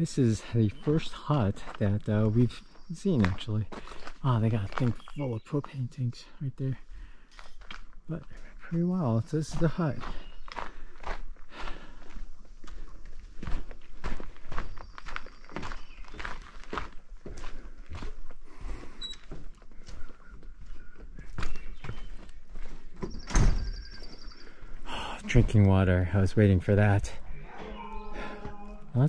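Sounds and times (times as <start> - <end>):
footsteps on wooden boardwalk: 0.4 - 6.0, 6.8 - 26.1, 27.1 - 29.0.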